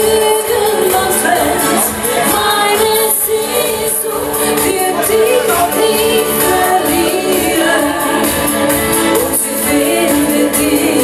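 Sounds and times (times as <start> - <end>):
pop band playing with steady beat: 0.0 - 11.0
woman singing into microphone: 0.0 - 11.0.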